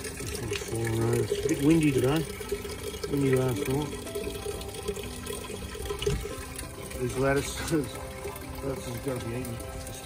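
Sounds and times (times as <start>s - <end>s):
water trickling through pipes: 0.0s - 10.0s.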